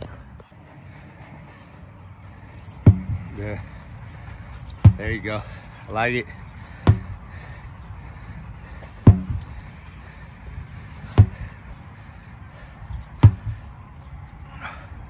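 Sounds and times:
sledgehammer thudding on rubber tire: 2.6s - 4.0s, 4.6s - 10.2s, 10.9s - 11.9s, 12.6s - 13.7s.

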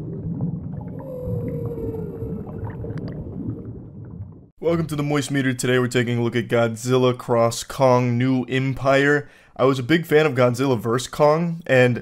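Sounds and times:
low watery rumble: 0.0s - 6.2s
whale-like call sliding down: 0.9s - 3.2s.

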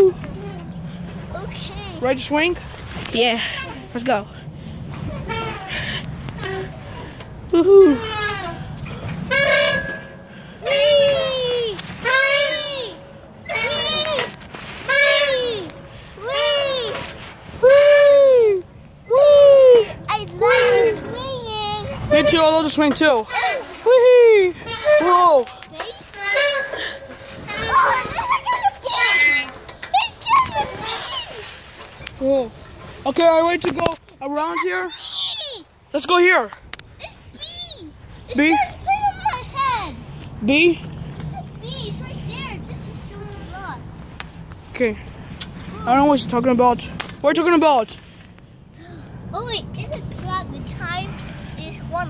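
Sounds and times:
children calling and squealing: 3.1s - 33.0s, 34.2s - 36.0s, 36.9s - 40.4s, 41.0s - 44.4s
child squealing wee: 10.6s - 14.2s.

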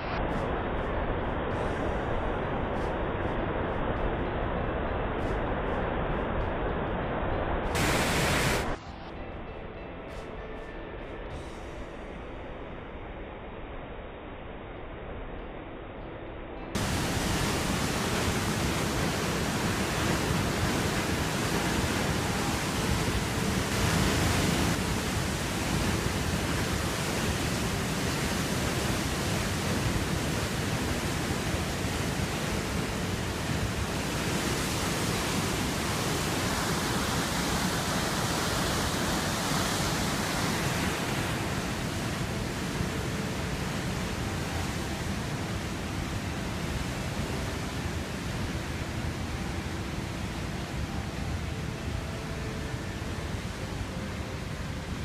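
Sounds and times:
water rushing down a channel: 16.8s - 42.3s.

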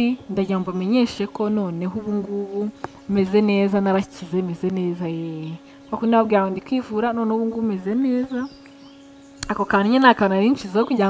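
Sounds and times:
woman speaking: 0.0s - 8.5s, 9.4s - 11.0s
faint steady hum: 0.0s - 11.0s.

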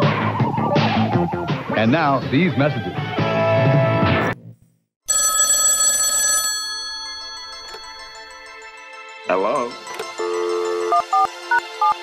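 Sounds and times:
bumper music: 0.0s - 4.2s
telephone bell ringing: 5.1s - 8.9s, 9.6s - 12.0s.

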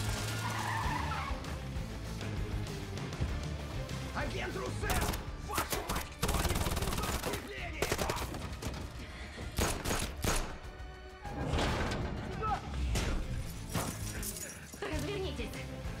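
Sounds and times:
gunfire bursts and single shots: 4.8s - 10.8s.

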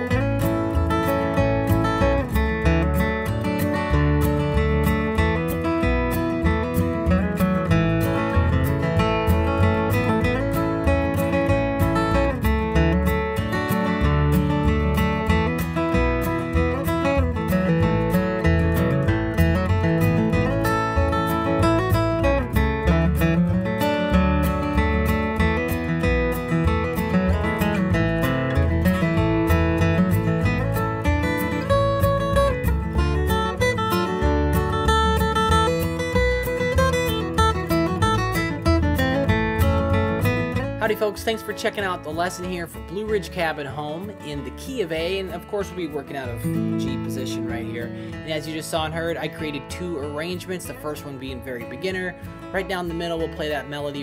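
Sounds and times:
acoustic guitar flatpicking: 0.0s - 54.0s.

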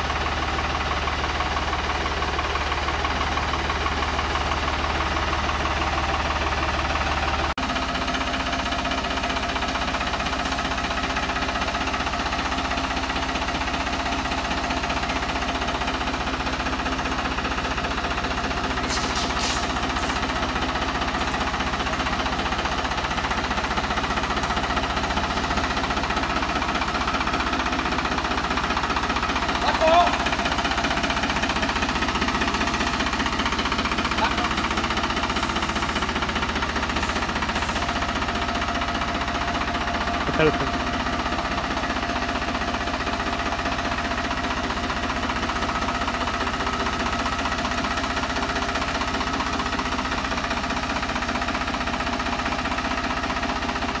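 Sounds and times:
diesel engine clattering: 0.0s - 54.0s.

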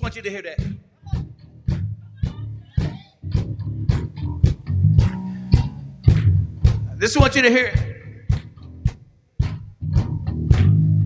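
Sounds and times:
sharp percussive hits: 0.0s - 10.8s
bass guitar groove: 0.0s - 11.0s.

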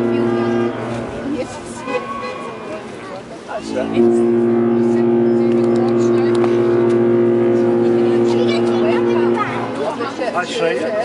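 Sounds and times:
ship's whistle deep blast: 0.0s - 2.8s, 3.5s - 10.3s.

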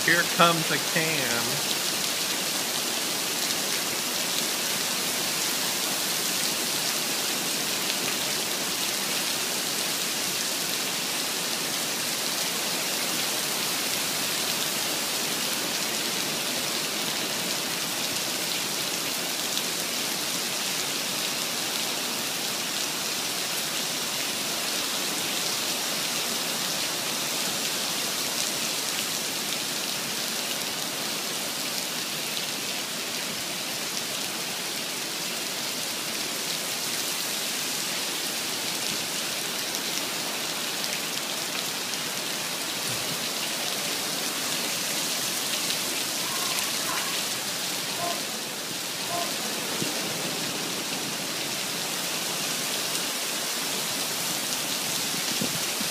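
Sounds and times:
heavy rain on asphalt: 0.0s - 55.9s.

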